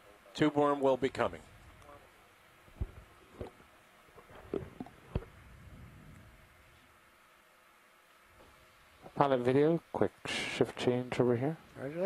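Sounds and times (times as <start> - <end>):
low steady hiss: 0.0 - 12.0.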